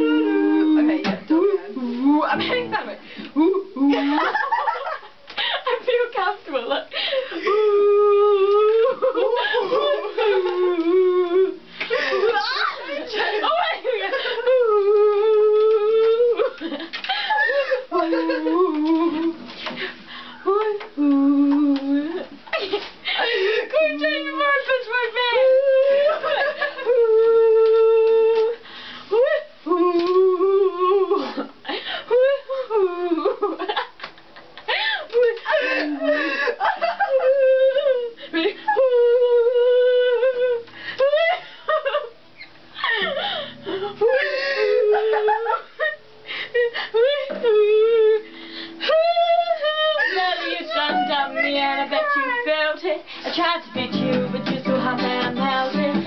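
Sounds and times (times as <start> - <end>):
strummed acoustic guitar chord: 2.4 - 3.2
girls laughing and squealing: 11.9 - 14.6, 34.6 - 39.0, 41.0 - 46.0, 48.8 - 52.6
breathy laughter: 34.6 - 38.8, 42.7 - 47.4
young women singing: 47.3 - 56.0.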